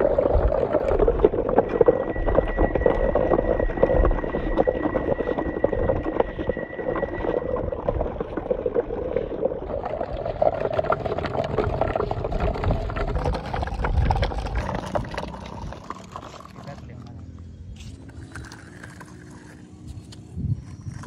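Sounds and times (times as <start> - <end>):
shallow water splashing: 0.0 - 17.0.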